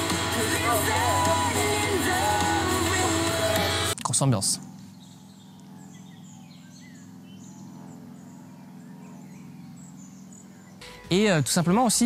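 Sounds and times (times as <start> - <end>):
birds chirping: 0.0 - 12.0
steady low hum: 0.0 - 12.0.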